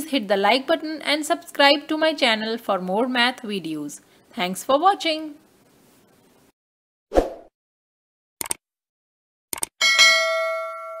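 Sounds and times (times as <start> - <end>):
bell ding: 9.8 - 11.0.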